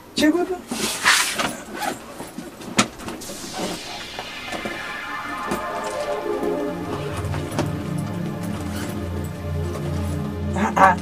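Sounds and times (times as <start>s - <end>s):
low pulsing bass: 3.2s - 10.8s
background music with chords: 3.2s - 11.0s.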